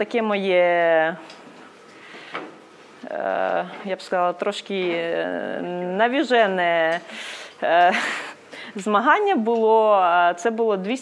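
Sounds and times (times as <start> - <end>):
woman speaking: 0.0 - 1.3, 3.0 - 11.0.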